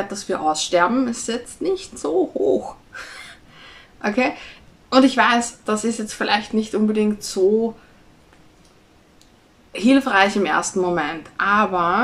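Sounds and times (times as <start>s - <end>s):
woman talking: 0.0s - 3.4s, 4.0s - 7.8s, 9.7s - 12.0s
faint clicks: 8.3s - 9.4s.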